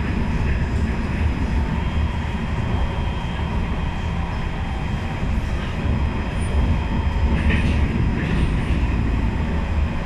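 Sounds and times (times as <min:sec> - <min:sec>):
train wheels rumbling on rails: 0:00.0 - 0:10.0.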